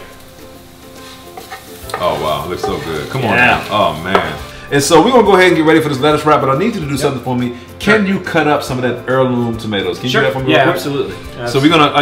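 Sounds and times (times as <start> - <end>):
spatula scraping skillet: 0.0 - 4.7.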